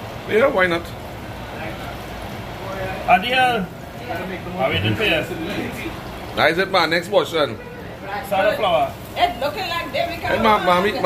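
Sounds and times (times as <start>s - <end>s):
chicken frying in hot oil: 0.0s - 11.0s.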